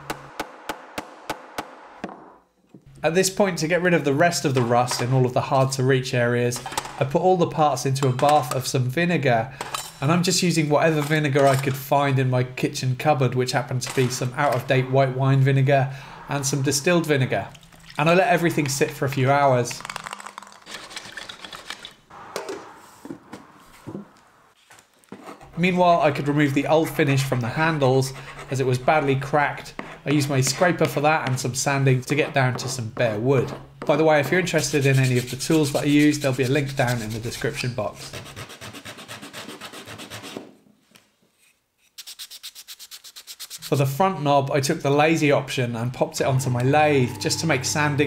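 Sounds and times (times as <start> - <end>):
liquid splashing: 17.5 - 18.0
metal parts moving in tin: 19.7 - 22.0.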